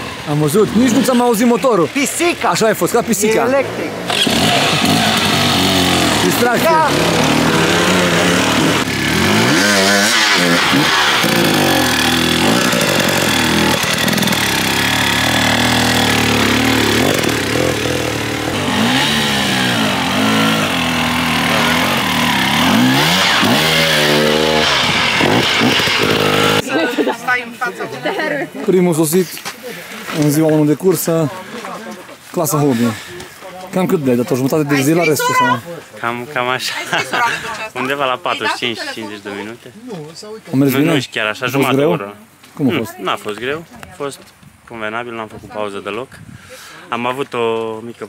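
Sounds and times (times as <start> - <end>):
dirt bike engines revving: 0.0 - 39.6.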